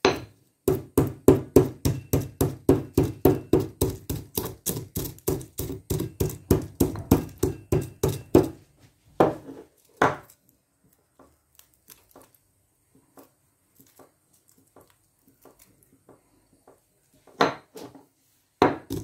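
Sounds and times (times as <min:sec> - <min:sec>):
pestle pounding spices in mortar: 0:00.0 - 0:08.6, 0:18.6 - 0:19.0.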